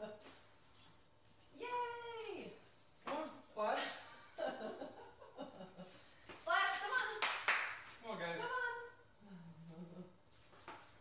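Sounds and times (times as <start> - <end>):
hand claps: 7.1 - 8.0.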